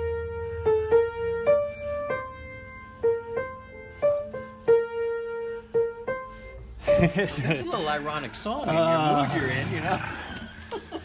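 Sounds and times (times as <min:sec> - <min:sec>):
one-handed piano melody: 0:00.0 - 0:08.0.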